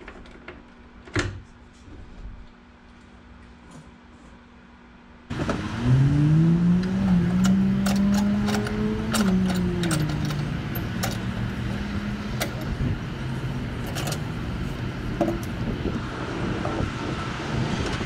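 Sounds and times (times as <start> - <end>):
vehicle engine revving: 5.3 - 18.0.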